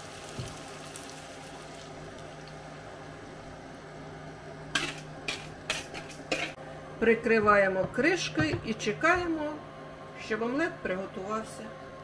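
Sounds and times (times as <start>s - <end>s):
steady sizzle: 0.0s - 7.2s.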